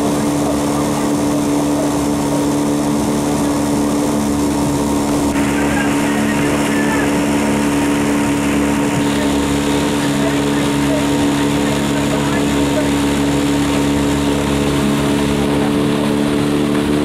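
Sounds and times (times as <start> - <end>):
outboard motor humming: 0.0 - 17.0.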